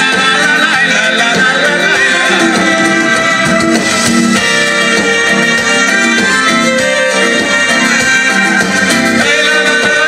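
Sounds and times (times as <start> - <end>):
electric guitars: 0.0 - 10.0
live dance band playing: 0.0 - 10.0
saxophone: 0.0 - 10.0.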